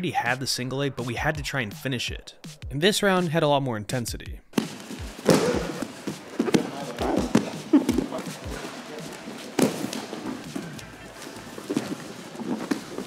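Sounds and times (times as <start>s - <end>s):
bare feet thudding on mats: 4.6s - 10.8s, 11.5s - 13.0s.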